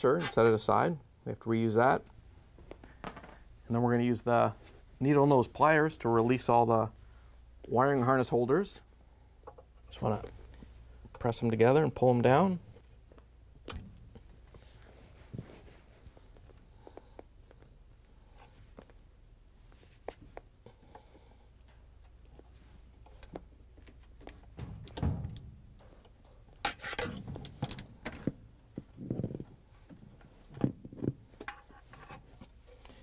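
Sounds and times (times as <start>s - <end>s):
knocks and scraping on metal: 24.3s - 29.5s
dull thud: 24.5s - 25.9s.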